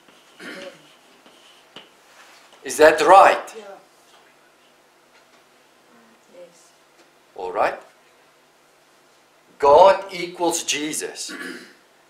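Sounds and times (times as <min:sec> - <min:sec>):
chalk scratching on blackboard: 0:00.0 - 0:01.8
chalk tapping board: 0:00.0 - 0:02.0.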